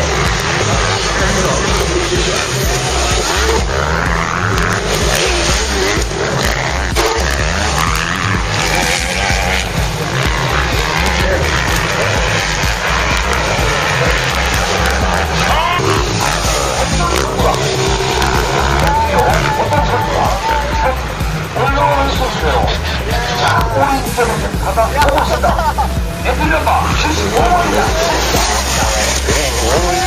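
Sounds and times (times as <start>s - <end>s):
background music: 0.0s - 30.0s
dirt bike engines revving: 0.0s - 30.0s.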